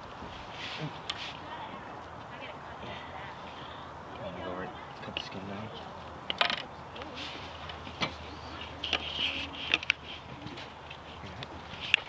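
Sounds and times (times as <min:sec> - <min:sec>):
outdoor background noise: 0:00.0 - 0:12.0
faint low voices: 0:00.6 - 0:06.1, 0:06.8 - 0:11.8.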